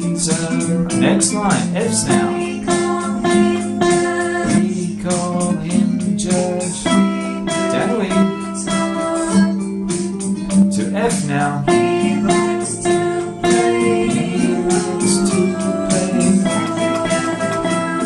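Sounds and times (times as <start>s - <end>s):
backing track music: 0.0s - 18.0s
classical guitar picking notes: 0.8s - 18.0s.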